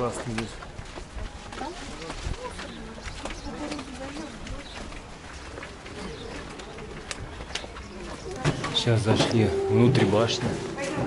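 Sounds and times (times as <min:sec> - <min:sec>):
indistinct voices: 0:07.9 - 0:11.0
low wavering call: 0:09.0 - 0:11.0.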